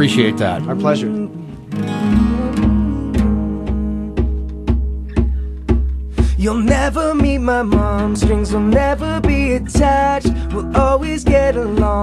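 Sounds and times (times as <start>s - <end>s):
low bass note: 0.0s - 5.5s
acoustic guitars strumming: 0.0s - 12.0s.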